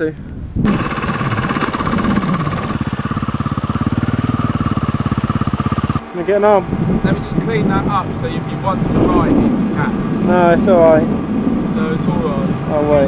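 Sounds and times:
dirt bike engine running: 0.6s - 7.7s.

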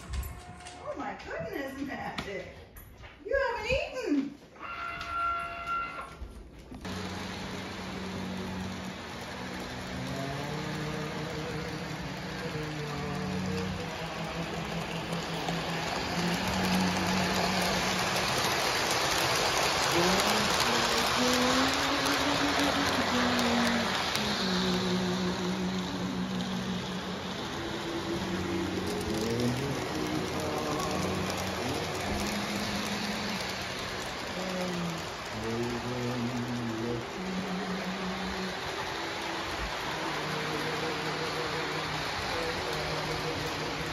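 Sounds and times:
model train rumbling on track: 6.6s - 43.9s.

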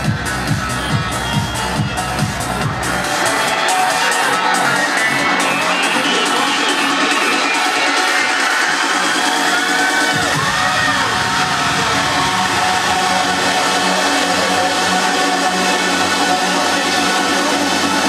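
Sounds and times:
crowd cheering: 0.0s - 18.0s
trance dance music: 0.0s - 18.0s.

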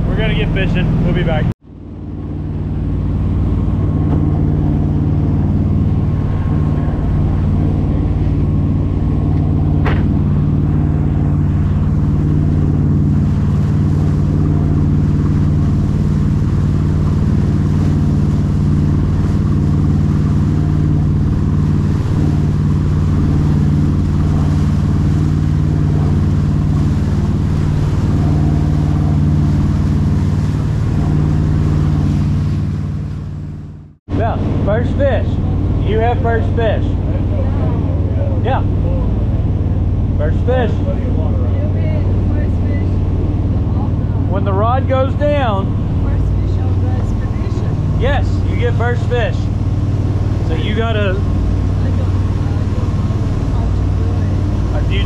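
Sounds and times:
boat engines droning: 0.0s - 55.0s
wake rushing: 0.0s - 55.0s.

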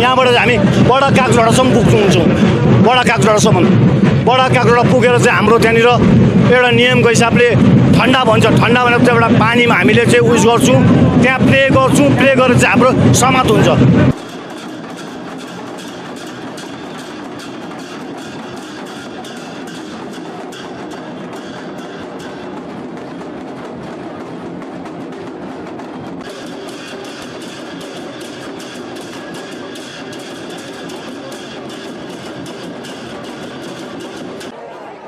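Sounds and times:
drums beaten fast: 0.0s - 34.6s
rapid percussive knocks and clacks: 0.0s - 34.6s
crowd din: 0.0s - 35.0s.

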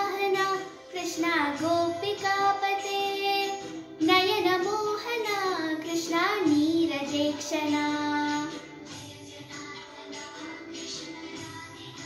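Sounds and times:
girl singing a hymn: 0.0s - 8.7s.

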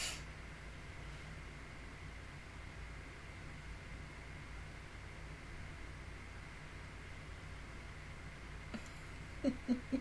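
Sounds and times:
low hum: 0.0s - 10.0s
steady background hiss: 0.0s - 10.0s.

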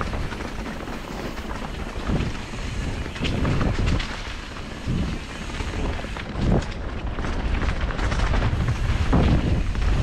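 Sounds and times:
bike knocking on rough ground: 0.0s - 10.0s
bike tyres on trail: 0.0s - 10.0s
wind rushing over microphone: 0.0s - 10.0s.

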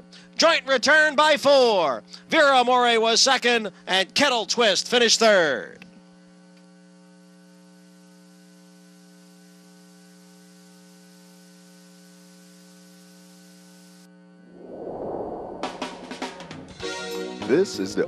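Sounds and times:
whoosh: 14.5s - 16.7s.

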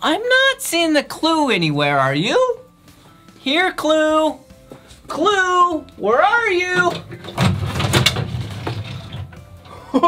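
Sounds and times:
wooden cabinet door opening: 6.6s - 9.5s.

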